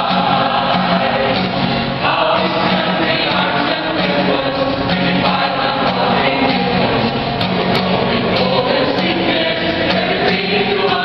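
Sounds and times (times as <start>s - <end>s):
mixed choir singing: 0.0s - 11.0s
strummed acoustic guitar: 0.0s - 11.0s.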